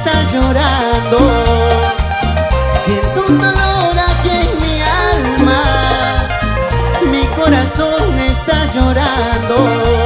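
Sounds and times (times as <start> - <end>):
latin band music: 0.0 - 10.0.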